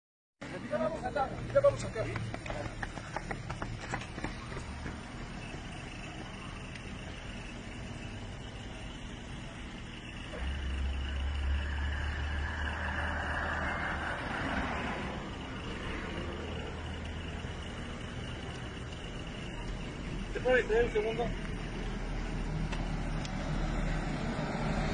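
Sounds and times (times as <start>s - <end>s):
road traffic rumble: 0.4s - 24.9s.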